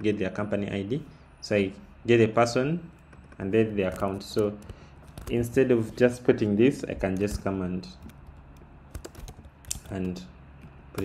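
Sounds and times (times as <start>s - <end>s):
computer keyboard typing: 3.0s - 5.7s, 6.7s - 11.0s.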